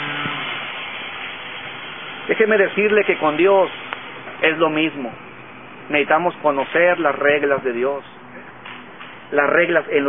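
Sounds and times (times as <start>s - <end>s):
steady rushing noise: 0.0s - 10.0s.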